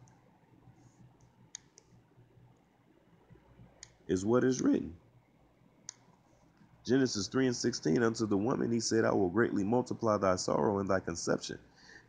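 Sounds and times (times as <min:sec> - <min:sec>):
small sharp clicks: 0:01.2 - 0:02.0, 0:03.8 - 0:04.0.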